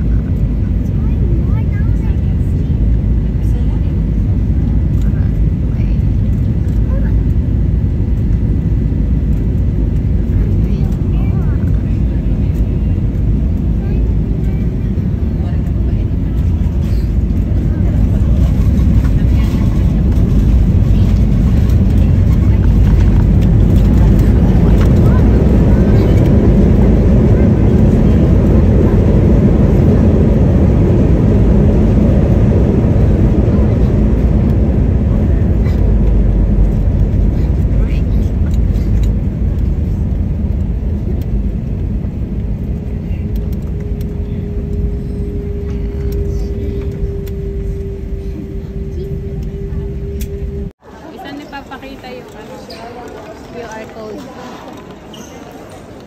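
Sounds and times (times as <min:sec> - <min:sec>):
jet engines rumbling in cabin: 0:00.0 - 0:56.0.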